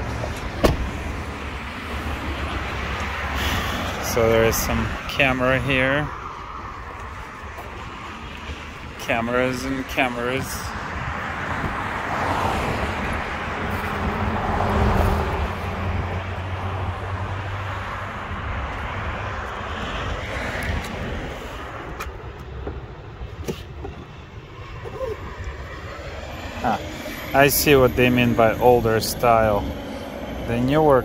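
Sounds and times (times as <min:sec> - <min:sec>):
vehicle passing with tyre noise: 0:00.0 - 0:31.0.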